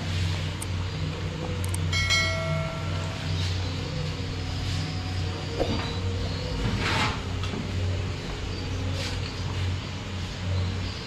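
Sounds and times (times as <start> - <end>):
low kitchen hum: 0.0 - 11.0.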